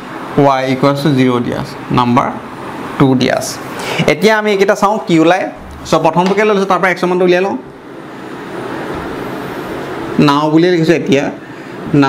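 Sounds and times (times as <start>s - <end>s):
road traffic noise: 0.0s - 4.2s, 7.6s - 10.2s, 11.4s - 12.0s.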